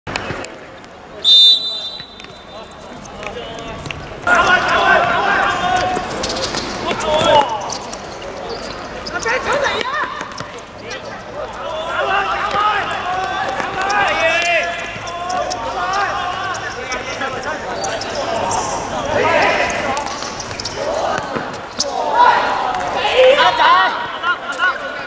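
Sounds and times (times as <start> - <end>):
referee's whistle blast: 1.2 - 2.5
players shouting: 1.2 - 8.0, 8.6 - 25.0
footsteps on hard court: 1.8 - 4.3.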